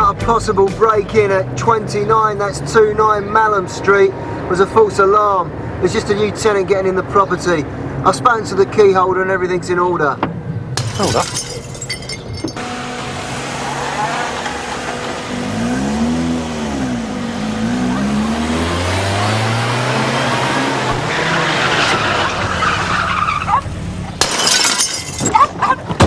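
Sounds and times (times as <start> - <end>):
car engine revving: 12.6 - 24.3
tyres squealing: 17.0 - 26.0.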